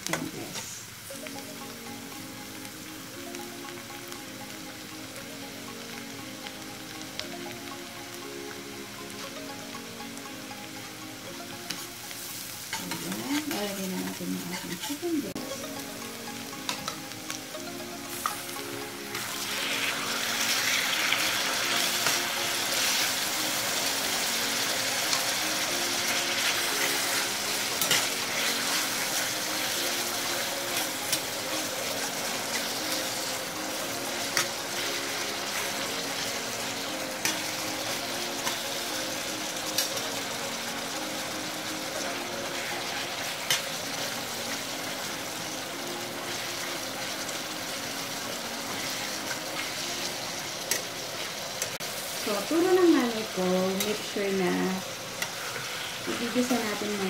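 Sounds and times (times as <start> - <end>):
chicken sizzling in a pan: 0.0 - 57.0
garlic and onion sizzling in butter: 0.0 - 57.0
metal spatula scraping a pan: 55.2 - 56.8.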